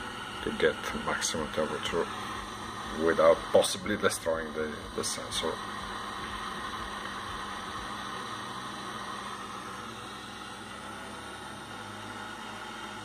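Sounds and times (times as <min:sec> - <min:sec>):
butane torch hissing: 0:00.0 - 0:13.0.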